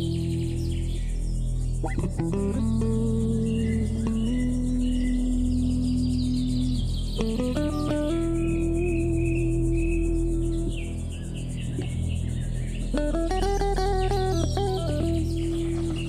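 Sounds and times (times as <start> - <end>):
low electronic backing track: 0.0 - 16.0
synth guitar sustained notes: 0.0 - 16.0.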